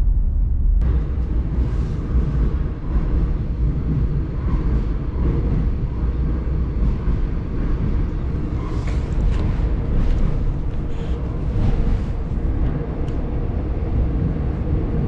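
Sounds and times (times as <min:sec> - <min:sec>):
subway train rumble: 0:00.0 - 0:15.0.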